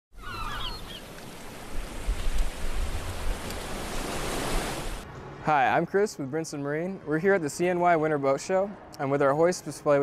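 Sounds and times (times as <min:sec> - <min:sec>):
bird cries: 0:00.1 - 0:01.4
ocean waves and surf: 0:00.1 - 0:05.9.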